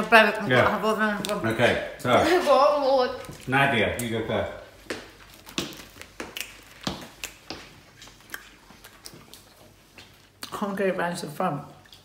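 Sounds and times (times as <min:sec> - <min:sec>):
chewing gum wet smacks: 0:05.2 - 0:10.6.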